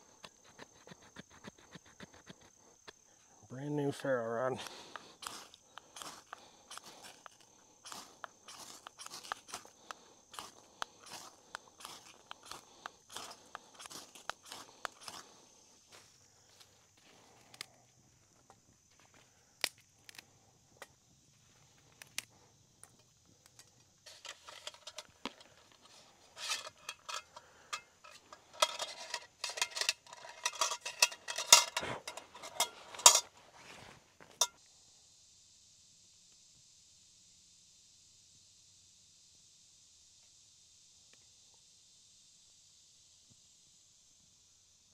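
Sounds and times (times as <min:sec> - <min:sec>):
knife scraping ferro rod: 0:10.3 - 0:15.2, 0:26.3 - 0:33.3
metal clanks and rattles: 0:24.1 - 0:25.5, 0:26.4 - 0:33.3.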